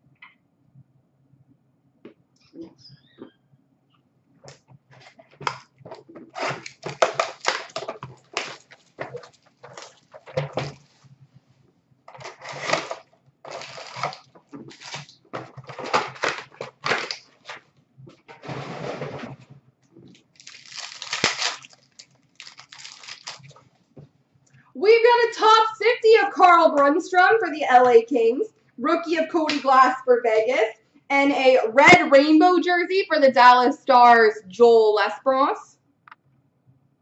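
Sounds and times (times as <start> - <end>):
wrappers torn and crinkled: 6.2 - 10.3, 12.1 - 17.6, 20.1 - 23.7
cards rustling: 12.1 - 17.6, 20.4 - 23.6.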